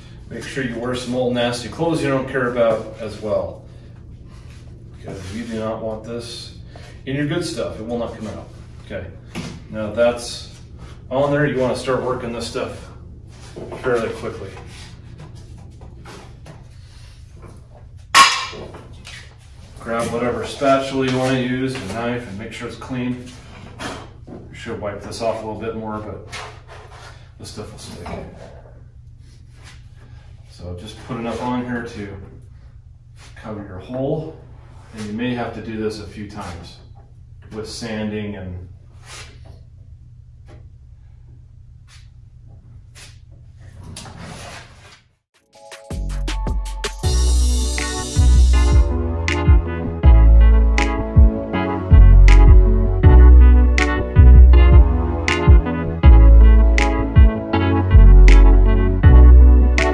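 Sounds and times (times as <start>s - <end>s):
steady low hum: 0.0s - 43.8s, 47.0s - 59.9s
sharp loud ringing knock: 18.2s - 18.7s
electronic music: 45.4s - 59.9s.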